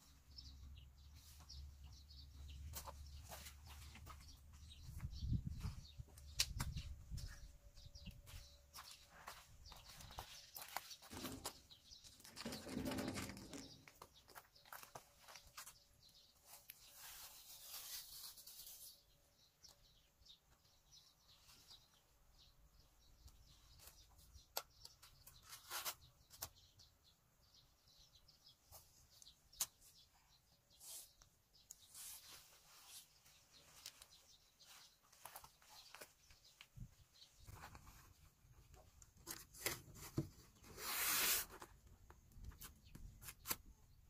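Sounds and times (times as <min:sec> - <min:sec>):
rustling: 0:08.3 - 0:19.1.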